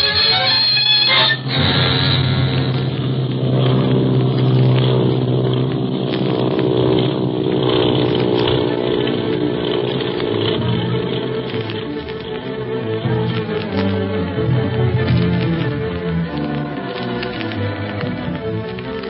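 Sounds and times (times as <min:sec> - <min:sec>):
background music: 0:00.0 - 0:04.1, 0:08.5 - 0:19.0
airplane engine droning: 0:00.0 - 0:19.0.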